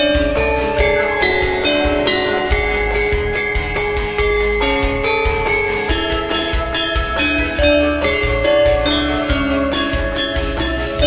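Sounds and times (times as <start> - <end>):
melody of held notes: 0.0 - 11.0
pulsing low drum beat: 0.0 - 11.0.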